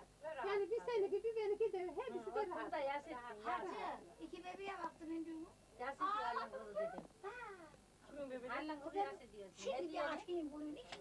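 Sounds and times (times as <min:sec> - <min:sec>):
women talking: 0:00.2 - 0:11.0.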